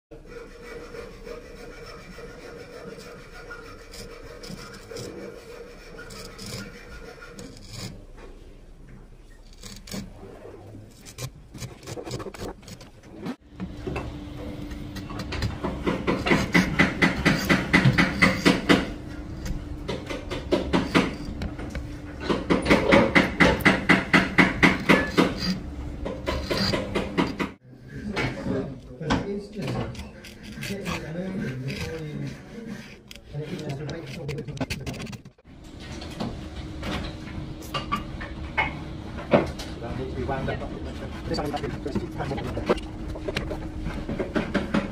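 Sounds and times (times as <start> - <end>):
plane blade scraping wood: 0.2 - 8.1, 9.4 - 13.4, 15.0 - 27.6, 29.6 - 35.4, 40.2 - 44.9.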